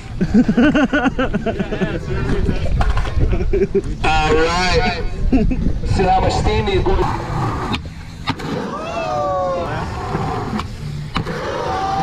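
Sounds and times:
voices: 0:00.0 - 0:07.8
skateboard wheels rolling: 0:06.7 - 0:12.0.

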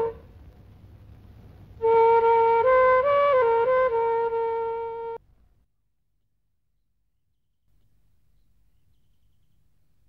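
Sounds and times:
long held flute note: 0:01.8 - 0:05.2.

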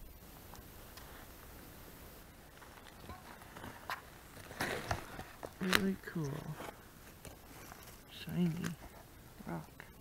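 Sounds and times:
faint outdoor hiss: 0:00.0 - 0:10.0
stones clicking and scuffing: 0:00.5 - 0:09.7.

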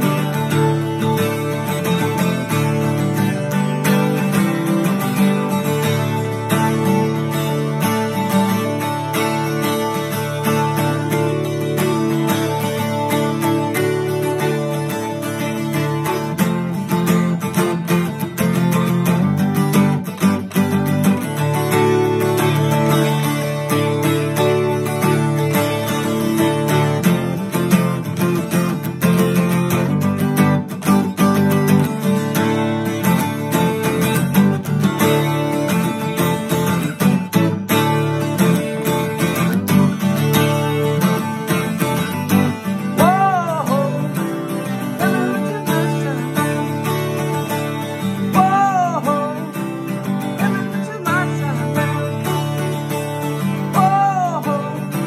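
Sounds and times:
acoustic guitar picking: 0:00.0 - 0:55.0.

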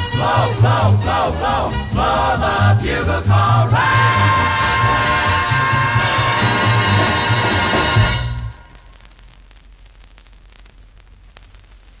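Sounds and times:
record surface hiss: 0:00.0 - 0:12.0
stylus crackles and clicks: 0:08.3 - 0:12.0.

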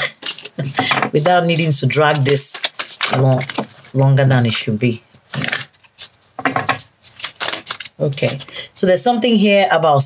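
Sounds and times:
cards being shuffled: 0:00.0 - 0:04.0, 0:05.2 - 0:08.5.

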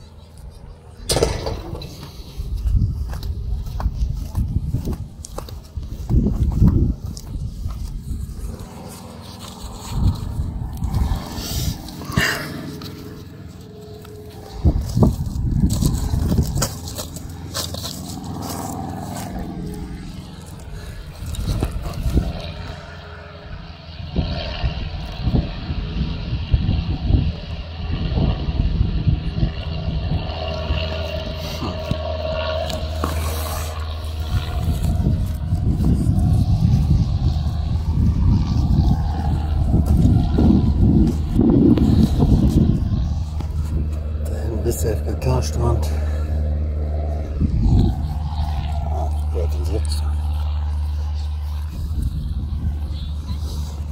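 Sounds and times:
distant voices: 0:00.0 - 0:26.5, 0:27.3 - 0:53.9
wind rumbling on microphone: 0:00.0 - 0:53.9.

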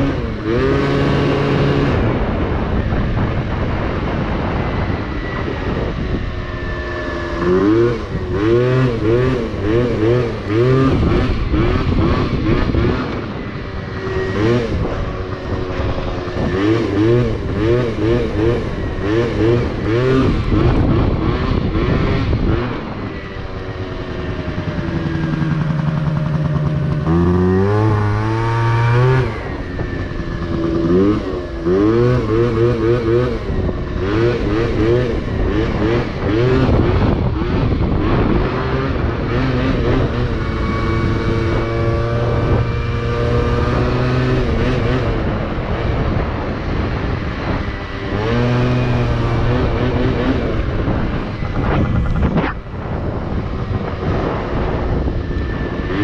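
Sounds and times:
scooter engine revving: 0:00.0 - 0:56.0.

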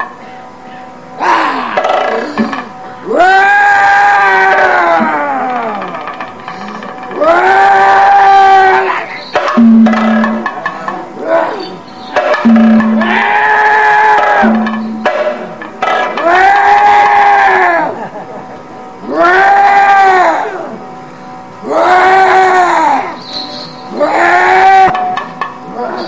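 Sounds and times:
faint steady drone: 0:00.0 - 0:26.0
person singing long notes: 0:01.2 - 0:03.4.

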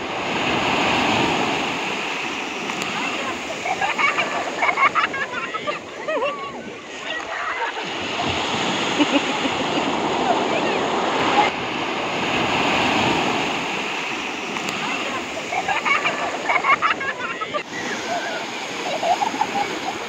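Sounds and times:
waves breaking in shallow water: 0:00.0 - 0:20.0.

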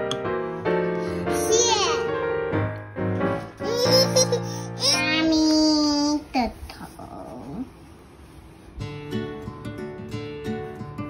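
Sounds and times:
acoustic guitar music: 0:00.0 - 0:06.2, 0:08.6 - 0:11.0.

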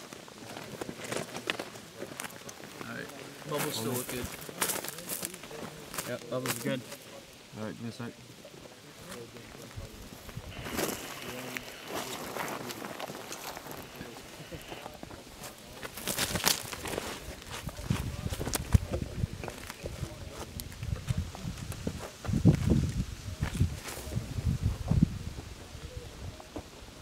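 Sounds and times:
rustling of gear and boots: 0:08.6 - 0:22.8.

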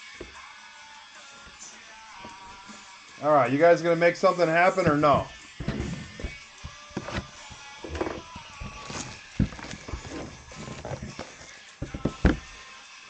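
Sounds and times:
cardboard boxes knocking on table: 0:04.9 - 0:12.5.

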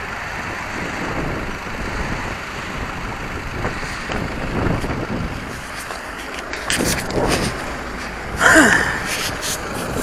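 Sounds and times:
person gasping: 0:08.4 - 0:09.2.

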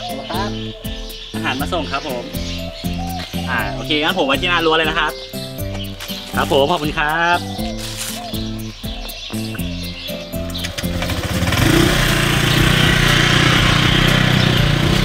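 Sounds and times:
background music of stepped notes: 0:00.0 - 0:15.0
motor scooter engine running: 0:10.5 - 0:15.0.

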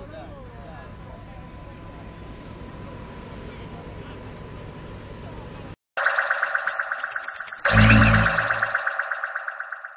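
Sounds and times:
outdoor background noise: 0:00.0 - 0:09.8
bright chiming tone pulsing: 0:06.0 - 0:09.9.

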